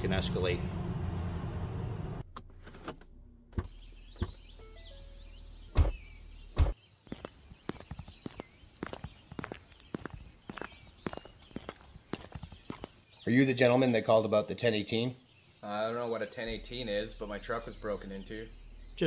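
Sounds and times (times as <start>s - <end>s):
low hum: 0.0s - 2.4s
birds chirping faintly: 3.6s - 19.0s
footsteps walking: 7.0s - 13.1s.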